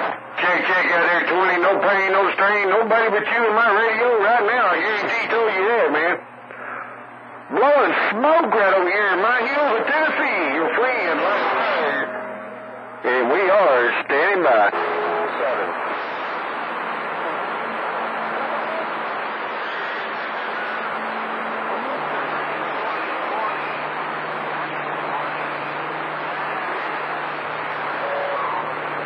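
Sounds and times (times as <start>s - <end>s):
faint steady carrier tones: 0.0s - 29.0s
radio static hiss: 0.0s - 29.0s
weak distant radio voices: 0.0s - 29.0s.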